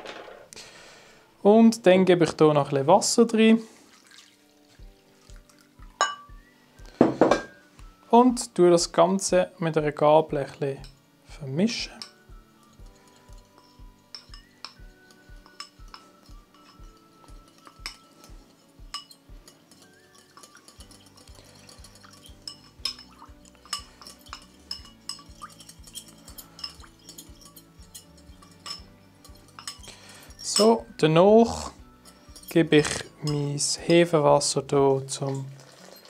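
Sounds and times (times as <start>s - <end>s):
soft background music: 0.0s - 36.0s
metal utensil clinking on ceramic bowl: 11.9s - 30.8s, 32.0s - 33.7s, 35.1s - 36.0s.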